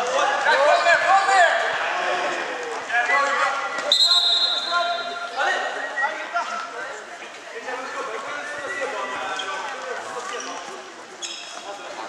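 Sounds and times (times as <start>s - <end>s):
spectators' voices: 0.0s - 12.0s
referee's whistle: 3.9s - 5.1s.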